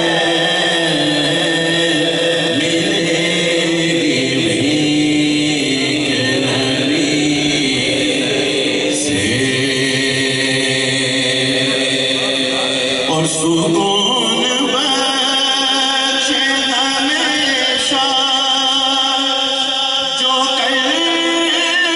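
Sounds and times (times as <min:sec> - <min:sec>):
man singing into a microphone: 0:00.0 - 0:21.9.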